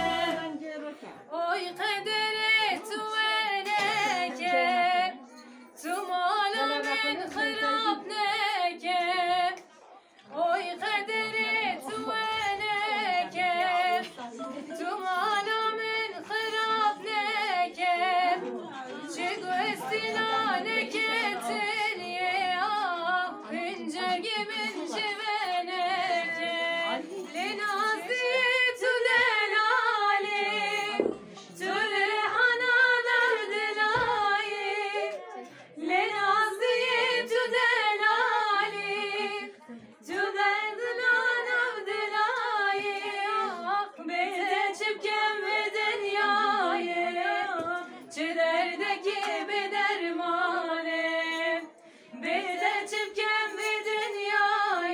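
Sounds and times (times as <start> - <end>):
woman singing unaccompanied: 0.0 - 9.6, 10.3 - 54.9.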